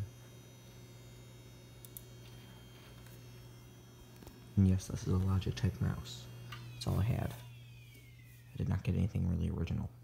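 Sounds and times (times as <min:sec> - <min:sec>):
computer humming: 0:00.0 - 0:10.0.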